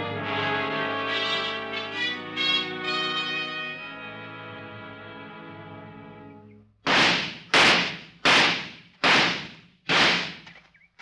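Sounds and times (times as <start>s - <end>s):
gunshots with ringing tail: 6.9s - 10.5s.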